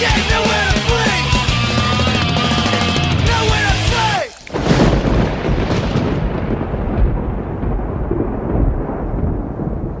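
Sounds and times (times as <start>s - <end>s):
deep thunder rumble: 4.5s - 10.0s.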